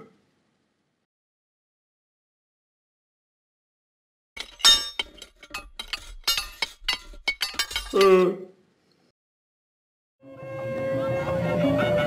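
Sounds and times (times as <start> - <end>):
sharp clinking cracking hits: 4.4 - 8.1.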